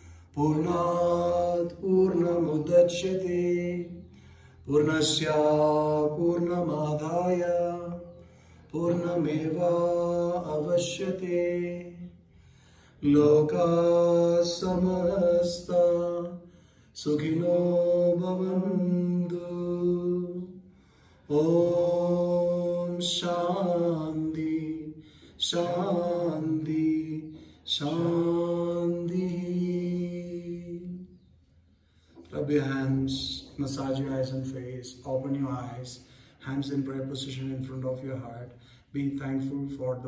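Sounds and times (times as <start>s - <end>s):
breath: 0.0s - 0.4s, 4.1s - 4.7s, 8.1s - 8.7s, 12.2s - 13.0s, 16.4s - 17.0s, 20.6s - 21.3s, 25.0s - 25.4s, 27.3s - 27.7s, 31.6s - 32.3s, 36.0s - 36.4s, 38.5s - 38.9s
man chanting: 0.0s - 12.3s, 13.0s - 31.2s, 32.2s - 40.0s.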